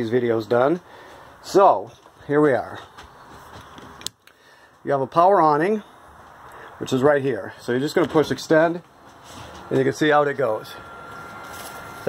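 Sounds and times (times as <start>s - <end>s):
man speaking: 0.0s - 0.8s, 1.4s - 2.9s, 4.9s - 5.9s, 6.8s - 8.9s, 9.7s - 10.8s.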